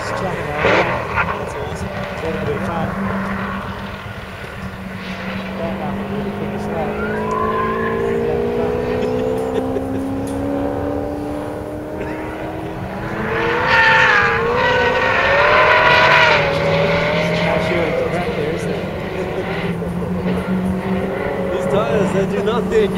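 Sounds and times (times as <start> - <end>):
car engine revving: 0.0 - 22.9
tyres squealing: 0.0 - 22.9.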